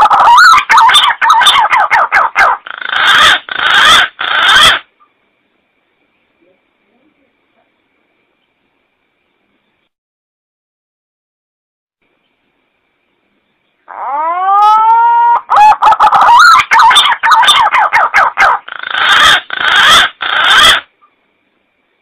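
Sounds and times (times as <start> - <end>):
pigeon whistling song: 14.2 - 20.9.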